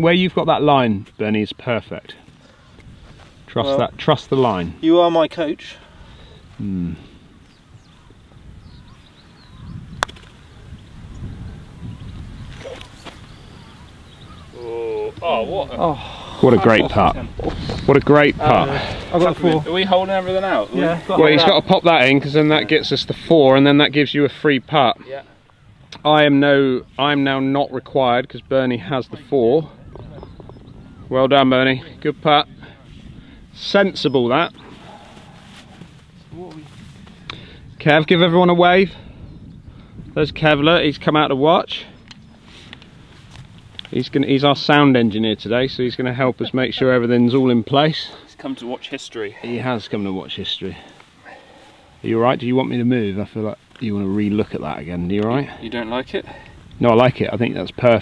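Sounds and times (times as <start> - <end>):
man talking: 0.0 - 2.2, 3.5 - 5.9, 6.6 - 7.2, 14.5 - 25.4, 26.0 - 29.8, 33.6 - 34.6, 40.2 - 42.0, 43.9 - 51.0, 52.0 - 58.0
quiet outdoor background noise: 0.0 - 58.0.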